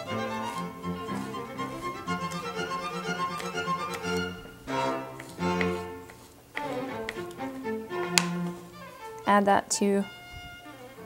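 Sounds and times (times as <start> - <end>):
violin and strings music: 0.0 - 11.0
knife striking cutting board: 5.2 - 7.3, 8.1 - 8.4.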